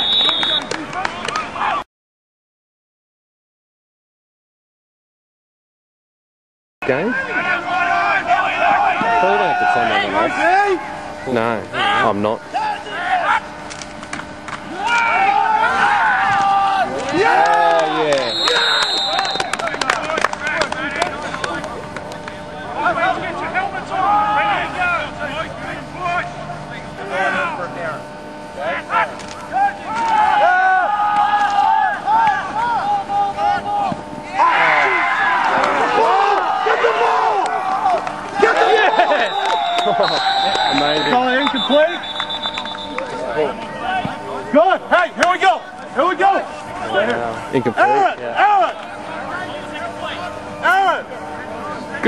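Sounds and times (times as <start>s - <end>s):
people calling and shouting: 6.8s - 52.0s.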